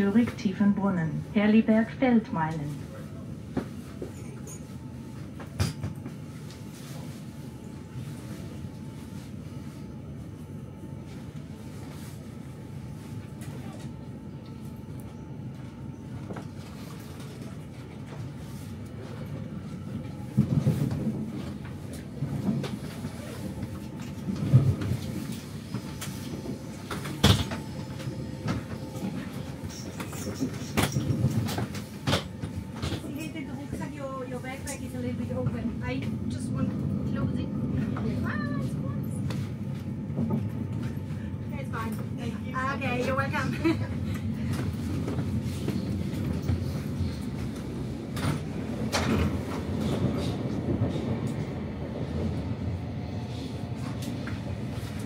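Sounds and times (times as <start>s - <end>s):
train carriage rumbling on rails: 0.0s - 55.0s.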